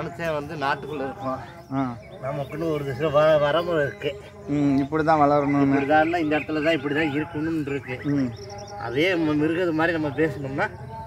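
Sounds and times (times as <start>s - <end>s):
man speaking: 0.0s - 10.9s.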